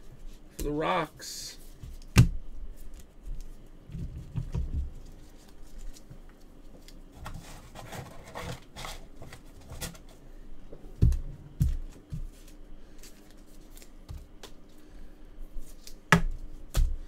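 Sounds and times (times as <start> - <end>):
cards rustling and clicking: 5.0 - 10.1, 11.9 - 14.8.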